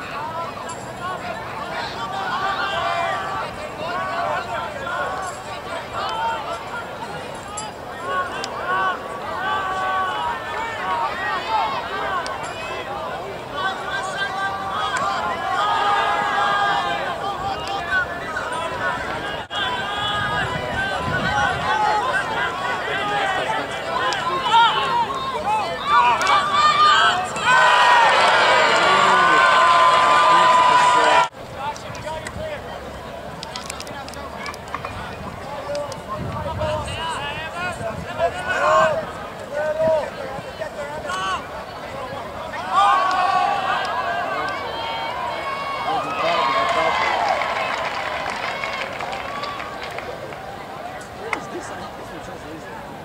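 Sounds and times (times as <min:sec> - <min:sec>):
crowd cheering with held yells: 0:00.0 - 0:31.3, 0:35.6 - 0:52.0
crowd shouting and calling out: 0:00.0 - 0:53.0.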